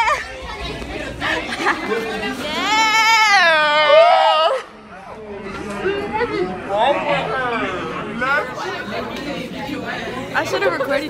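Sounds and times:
teenagers chattering and laughing: 0.0s - 11.0s.

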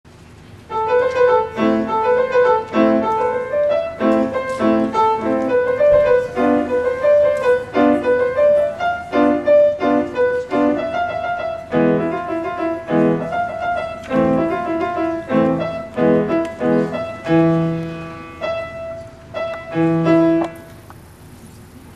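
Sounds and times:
solo grand piano: 0.1s - 21.9s.

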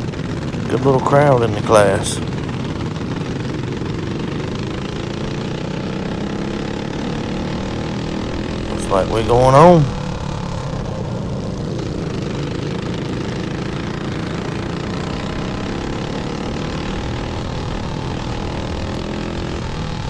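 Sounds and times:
kart engine running hard: 0.0s - 20.0s
wind and track noise: 0.0s - 20.0s.

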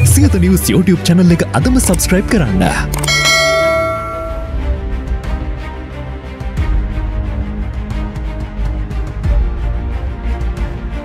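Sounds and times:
theme music: 0.0s - 11.0s
bright bell-like chime: 3.0s - 4.7s.

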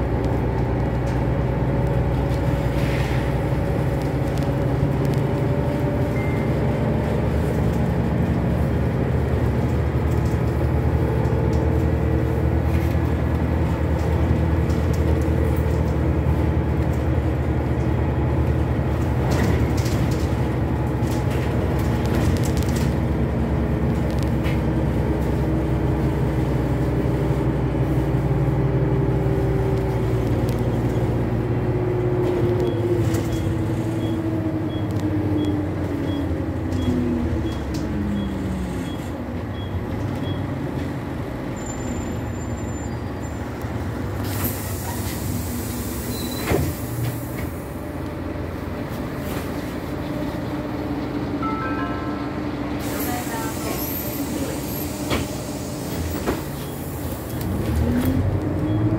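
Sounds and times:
bus engine drone and whine: 0.0s - 58.9s
air brake hiss: 44.2s - 47.5s, 52.8s - 57.2s.

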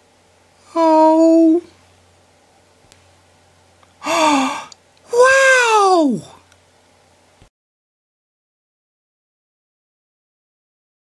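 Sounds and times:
low room hum: 0.0s - 7.5s
person gasping or sighing: 4.0s - 4.8s.

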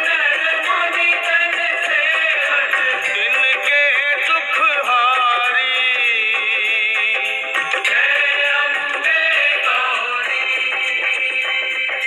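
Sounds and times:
devotional song singing: 0.0s - 12.0s
instrumental accompaniment with beat: 0.0s - 12.0s.

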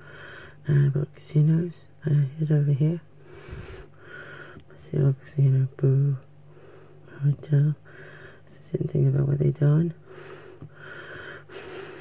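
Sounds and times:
person breathing: 0.0s - 0.6s, 3.2s - 4.6s, 6.5s - 7.1s, 7.8s - 8.5s, 10.0s - 12.0s
faint low hum: 0.0s - 12.0s.

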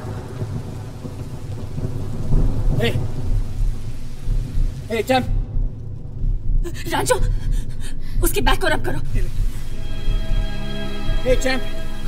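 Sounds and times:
heavy rain: 0.0s - 12.0s
rolling thunder: 0.0s - 12.0s.

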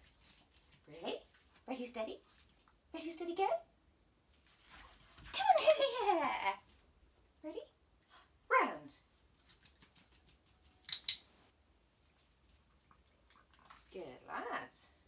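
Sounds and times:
sharp click: 10.9s - 11.3s.

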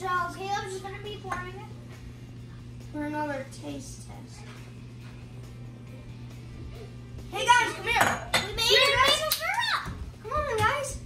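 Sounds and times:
music: 0.0s - 11.0s
steady low hum: 0.0s - 11.0s.

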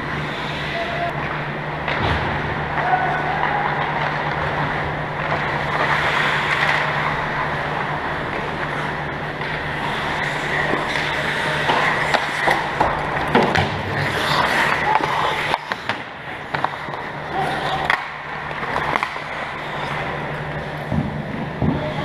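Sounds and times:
steady low hum: 0.0s - 22.0s
stick and puck clacks: 0.0s - 22.0s
skate blades scraping ice: 2.8s - 22.0s.

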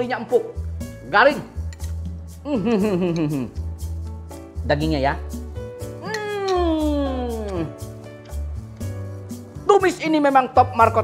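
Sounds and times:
background music with beat: 0.0s - 11.0s
man humming mmm while chewing: 2.4s - 3.6s.

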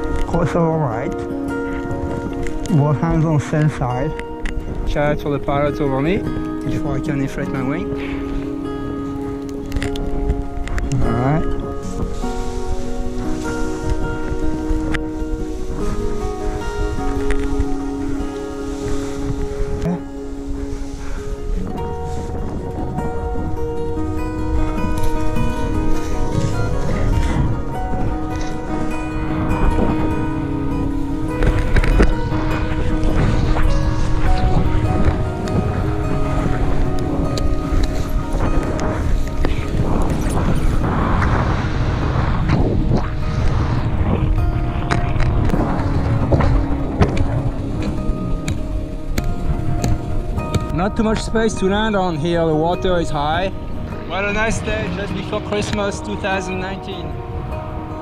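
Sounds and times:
fingerstyle acoustic guitar: 0.0s - 58.0s
low wind rumble: 0.0s - 58.0s.

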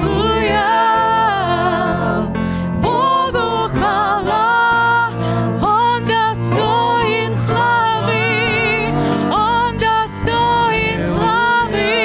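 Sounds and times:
voices singing held notes: 0.0s - 12.0s.

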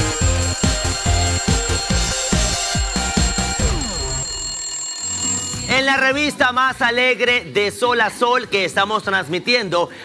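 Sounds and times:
alarm-clock bell ringing: 0.0s - 6.9s
upbeat jingle with steady beat: 0.0s - 7.2s.

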